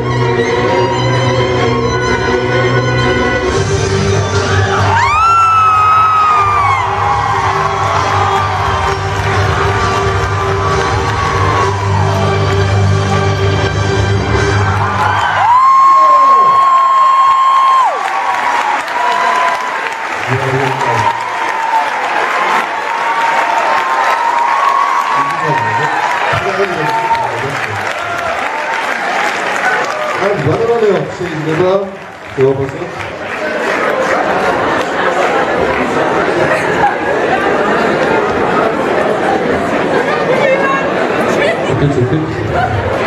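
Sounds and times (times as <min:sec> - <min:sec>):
audience whooping: 0:04.2 - 0:13.1, 0:14.4 - 0:39.4
audience cheering: 0:04.2 - 0:13.6, 0:14.4 - 0:43.0.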